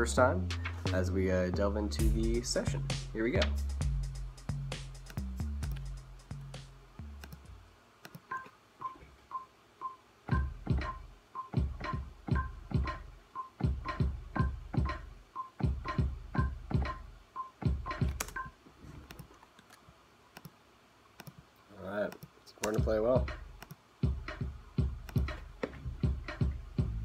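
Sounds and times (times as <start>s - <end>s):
drum kit hits: 2.0s - 5.0s, 10.3s - 18.2s, 22.8s - 27.0s.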